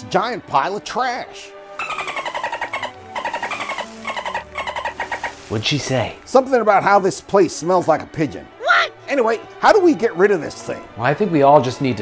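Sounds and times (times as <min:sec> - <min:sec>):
whale squeaky chattering calls: 0:01.8 - 0:05.9.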